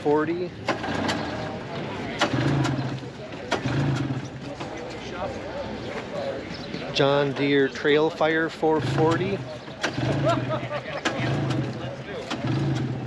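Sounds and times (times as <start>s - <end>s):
people talking in background: 0.0s - 13.0s
sharp clicks: 9.1s - 10.2s.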